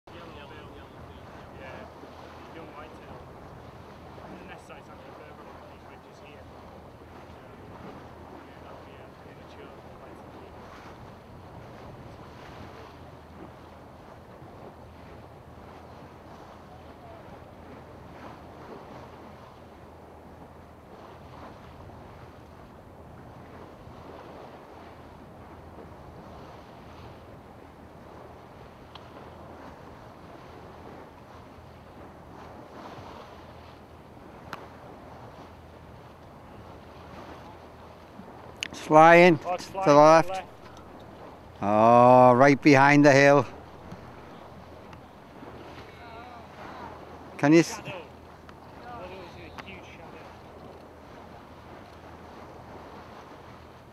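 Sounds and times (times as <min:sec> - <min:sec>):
water noise: 0:00.0 - 0:53.9
wind: 0:00.0 - 0:53.9
boat engine humming: 0:00.1 - 0:53.9.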